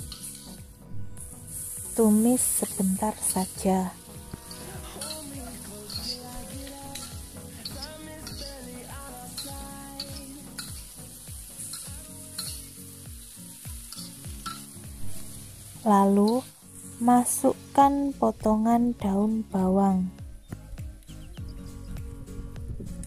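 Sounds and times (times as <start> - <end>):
food sizzling in a wok: 0.0 - 18.6.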